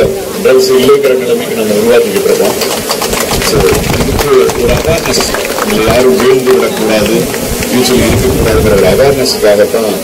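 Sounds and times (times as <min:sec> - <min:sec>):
crowd clapping along: 0:02.1 - 0:08.9.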